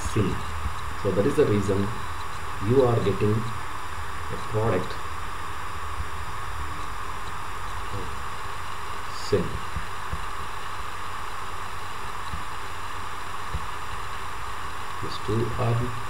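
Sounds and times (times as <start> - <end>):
recording hiss and hum: 0.0 - 16.0
person speaking a word: 15.0 - 16.0.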